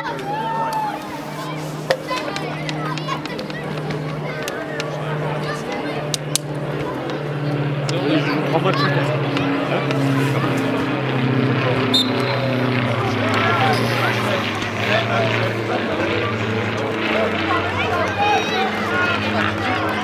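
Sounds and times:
distant voices: 0.0 - 20.0
low engine drone: 0.0 - 20.0.

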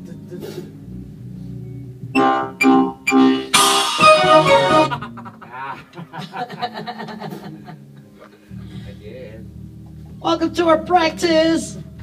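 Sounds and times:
scattered notes: 2.2 - 5.0
keyboard and electric guitar chord: 2.2 - 5.1.

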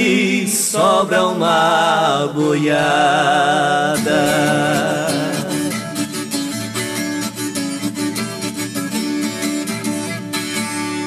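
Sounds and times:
plucked acoustic guitar: 0.0 - 11.0.

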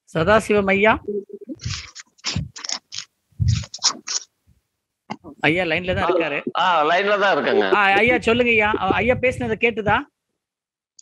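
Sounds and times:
scratchy scraping on microphone: 1.6 - 4.3.

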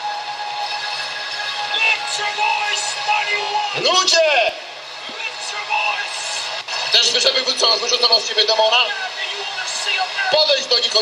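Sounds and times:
sustained chord of steady tones: 0.0 - 11.0.

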